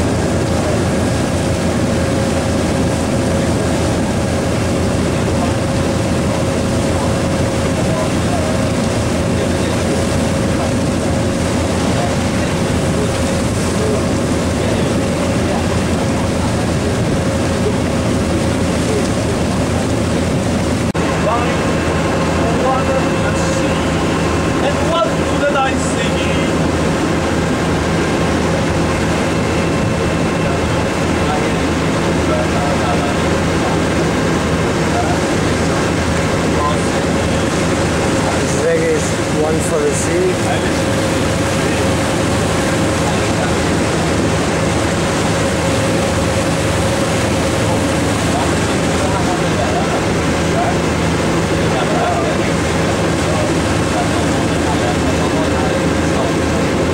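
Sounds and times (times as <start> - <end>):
boat engine droning: 0.0 - 56.9.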